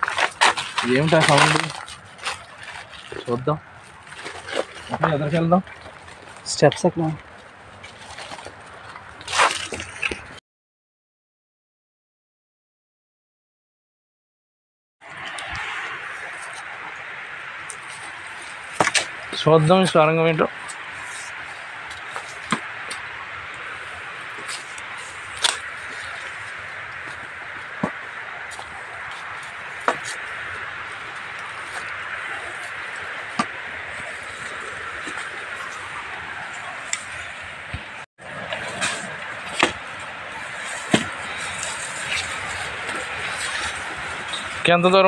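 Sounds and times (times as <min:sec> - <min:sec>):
crunching rustle: 0:00.0 - 0:10.4, 0:15.1 - 0:45.0
dry leaves rustling underfoot: 0:00.0 - 0:10.4, 0:15.1 - 0:45.0
forest background hiss: 0:15.2 - 0:45.0.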